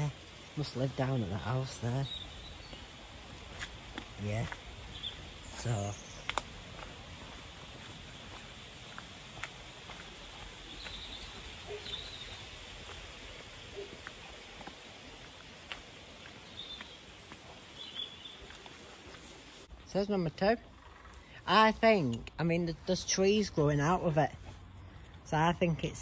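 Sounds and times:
footsteps through undergrowth: 0.0 - 19.9, 23.0 - 25.8
faint steady hiss: 0.0 - 20.0.

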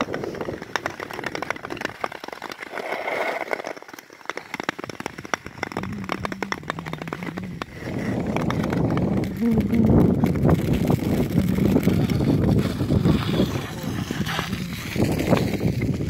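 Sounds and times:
ice crackling and pinging: 0.0 - 16.0
ice skates gliding on ice: 0.0 - 16.0.

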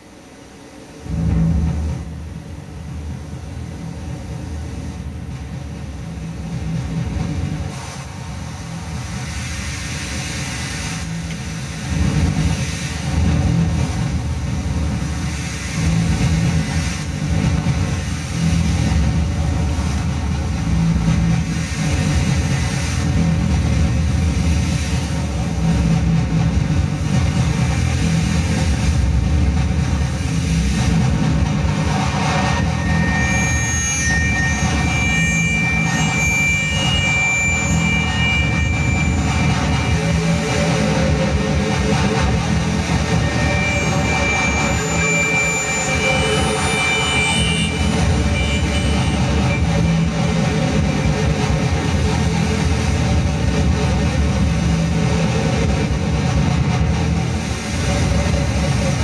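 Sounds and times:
distorted synthesizer drone: 0.0 - 59.0
hiss: 0.9 - 59.0.

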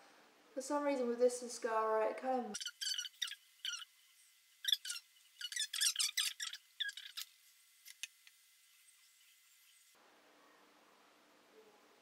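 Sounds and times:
sped-up squeaky voice chatter: 2.6 - 3.9, 4.6 - 7.3.

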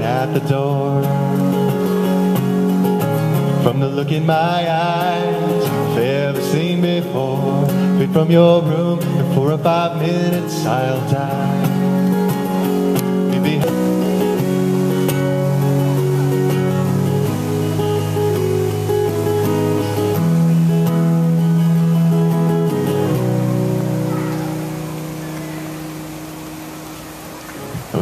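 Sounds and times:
acoustic guitar strumming chords: 0.0 - 28.0.

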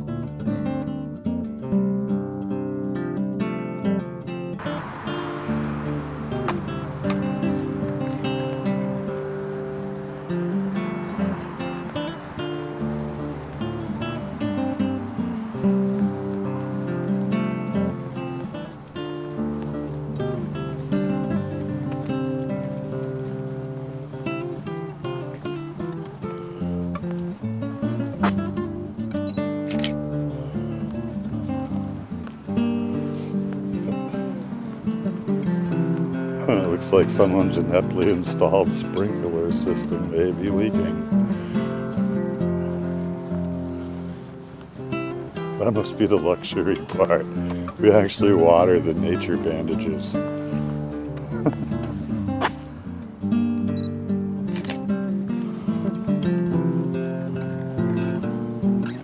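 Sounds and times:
acoustic guitar strumming: 0.0 - 59.0.

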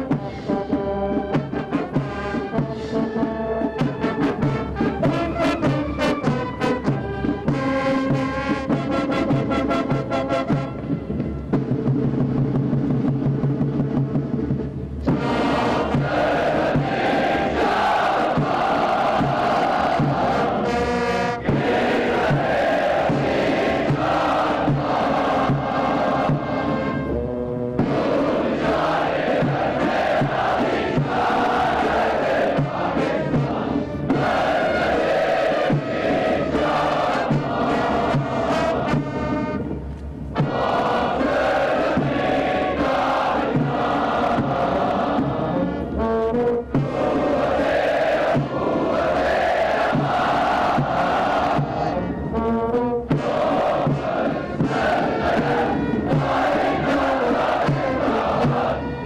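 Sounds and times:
marching drum beat: 0.0 - 27.1, 27.8 - 39.6, 40.3 - 45.7, 46.5 - 52.0, 53.0 - 59.0
military band playing: 0.0 - 59.0
many voices singing in chorus: 15.1 - 27.0, 27.8 - 39.2, 40.4 - 45.8, 46.8 - 52.1, 53.1 - 59.0.

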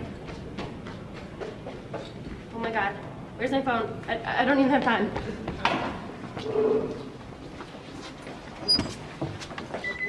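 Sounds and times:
door squeaking: 8.6 - 9.0.

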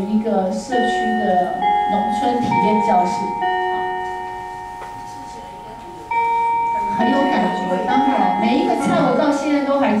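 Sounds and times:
chime notes ringing: 0.7 - 10.0.

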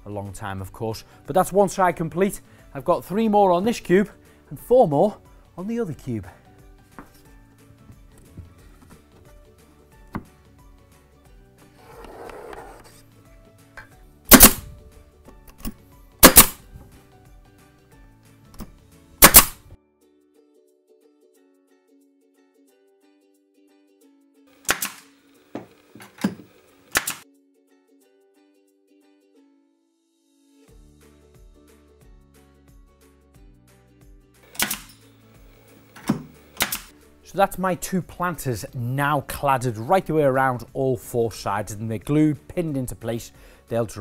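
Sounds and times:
pneumatic nailer shots: 14.3 - 14.7, 16.2 - 16.6, 19.2 - 19.7, 24.6 - 27.2, 34.4 - 36.9.

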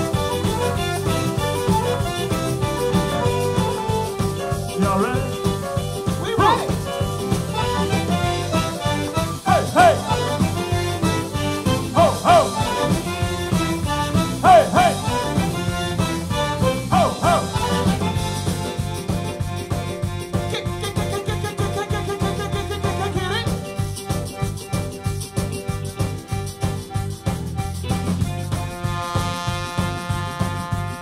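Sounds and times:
live zydeco band playing: 0.0 - 31.0
high sliding lick: 0.7 - 18.7.

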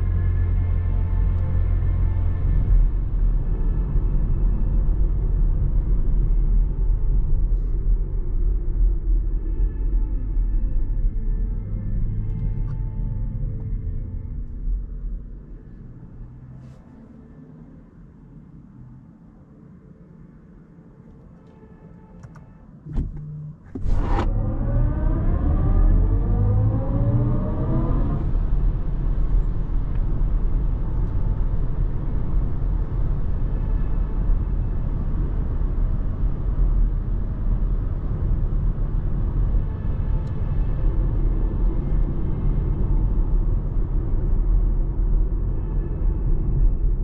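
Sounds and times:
electric drive tones rising: 22.9 - 28.7.

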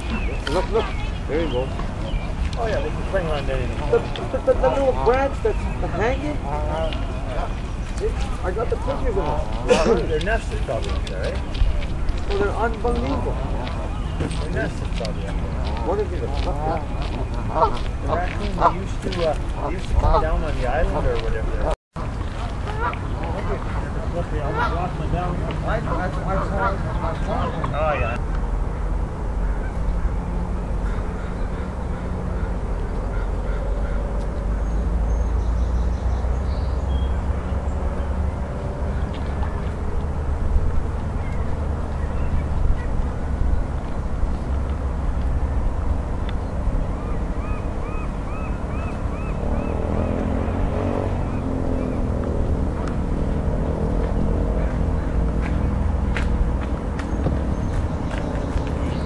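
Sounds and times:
low outdoor rumble: 0.0 - 59.0
waterfowl calls: 12.2 - 21.2, 22.6 - 28.2, 30.8 - 35.1, 46.9 - 52.1.

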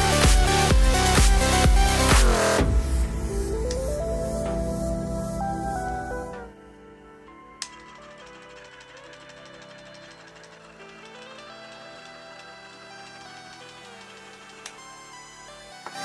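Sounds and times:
quiet background music: 0.0 - 16.0
rapid mechanical ticking: 7.6 - 16.0.

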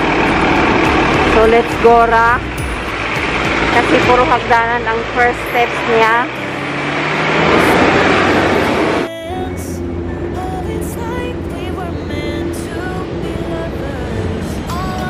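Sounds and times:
background music with melody: 0.0 - 15.0
road traffic noise: 0.0 - 15.0.

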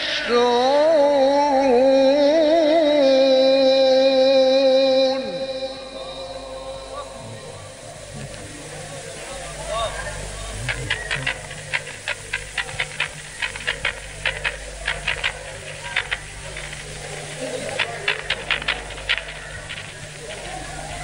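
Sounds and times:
steady electrical hum: 0.0 - 21.0
low crowd murmur: 5.1 - 21.0
audience clapping: 8.0 - 21.0.

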